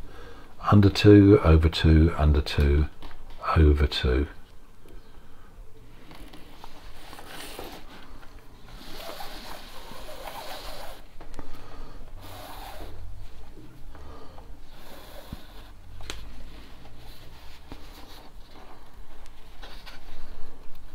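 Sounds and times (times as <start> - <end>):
cord rubbing through knot: 6.0 - 11.2, 12.2 - 13.8, 14.6 - 20.5.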